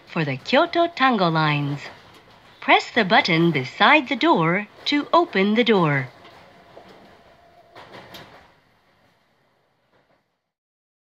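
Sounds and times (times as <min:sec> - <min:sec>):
train carriage running noise: 0:00.0 - 0:10.4
train rattle: 0:00.0 - 0:10.4.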